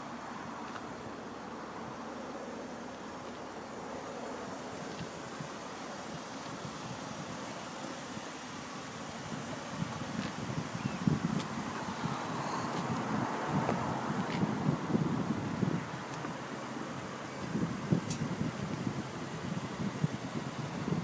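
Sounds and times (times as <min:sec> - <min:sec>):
steady background noise: 0:00.0 - 0:20.5
wind buffeting microphone: 0:09.2 - 0:16.4, 0:17.3 - 0:21.0.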